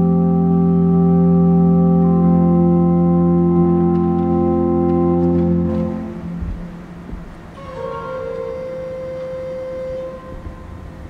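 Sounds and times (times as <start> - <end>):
faint low rumble: 0.0 - 11.0
pipe organ playing: 0.0 - 11.0.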